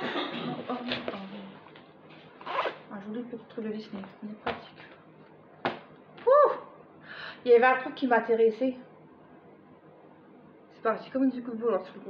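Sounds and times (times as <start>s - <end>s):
plastic pouch zipper rasping: 2.4s - 2.9s.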